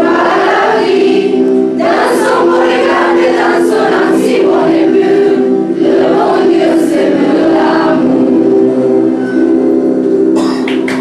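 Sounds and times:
choir holding a chord: 0:00.0 - 0:10.6.

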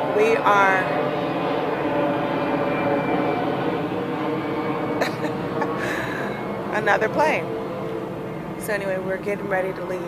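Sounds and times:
airplane flying overhead: 0:00.0 - 0:10.0.

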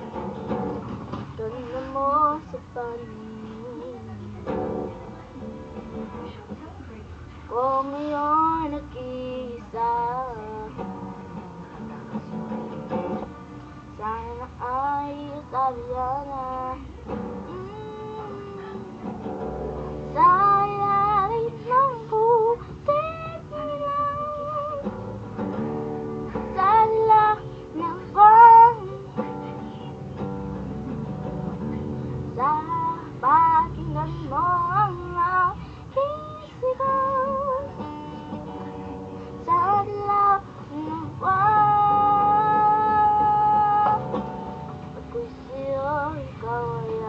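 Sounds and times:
strummed acoustic guitar: 0:00.0 - 0:47.0
boy singing: 0:01.3 - 0:05.0, 0:07.5 - 0:11.0, 0:13.9 - 0:19.3, 0:20.0 - 0:24.9, 0:26.3 - 0:30.2, 0:32.3 - 0:38.6, 0:39.3 - 0:44.4, 0:45.0 - 0:47.0.

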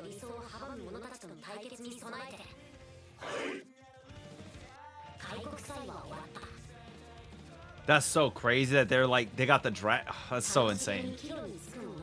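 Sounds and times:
wavering voice-like pitched sound: 0:03.2 - 0:03.7.

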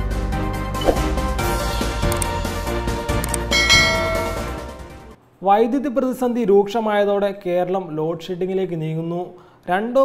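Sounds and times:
intro music: 0:01.0 - 0:05.2
notification bell chime: 0:03.5 - 0:04.7.

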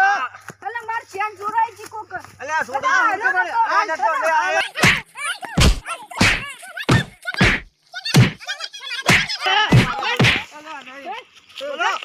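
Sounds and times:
heavy thuds of stick blows: 0:04.8 - 0:08.4, 0:09.1 - 0:10.5.

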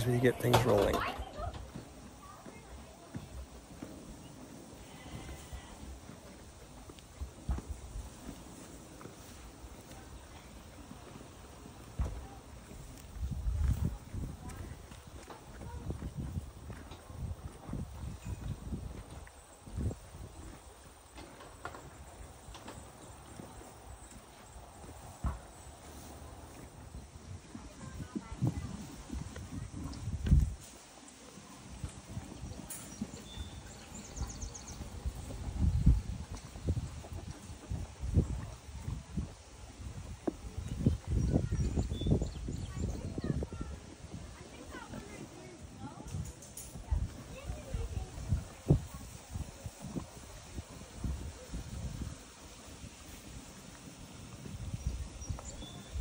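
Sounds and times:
hooves thumping: 0:00.0 - 0:56.0.

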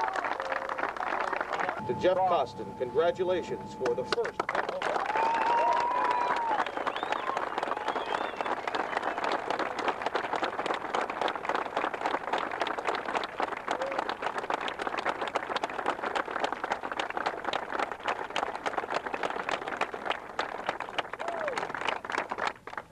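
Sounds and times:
crowd applauding: 0:00.0 - 0:02.4, 0:03.3 - 0:22.9.

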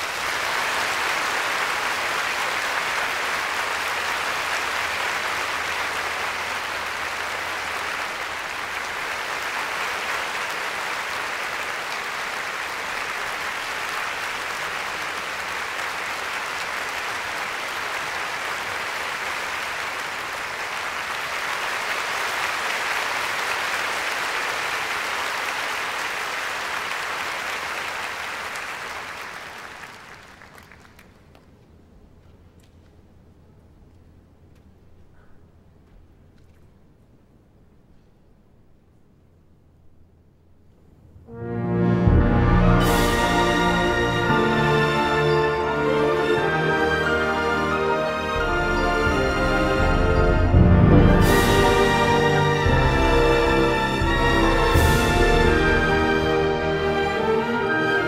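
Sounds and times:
audience applauding: 0:00.0 - 0:31.6, 0:42.0 - 0:58.0.

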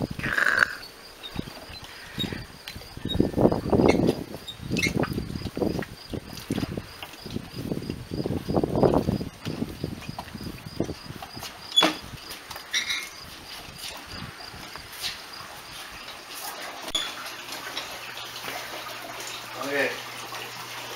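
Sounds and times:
high cricket chirping: 0:00.0 - 0:17.2
garden cart rumbling and rattling: 0:00.0 - 0:20.9.

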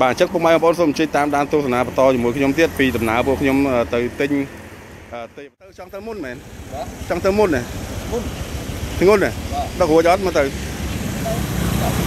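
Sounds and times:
men talking: 0:00.0 - 0:12.0
street traffic noise: 0:00.0 - 0:12.0.

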